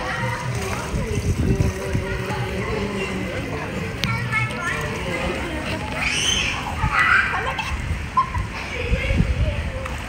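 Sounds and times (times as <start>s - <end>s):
indistinct voices: 0.0s - 7.9s.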